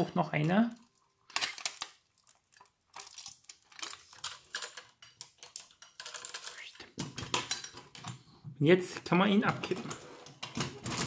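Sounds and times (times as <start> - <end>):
small metallic clicks and rattles: 0.8 - 8.2.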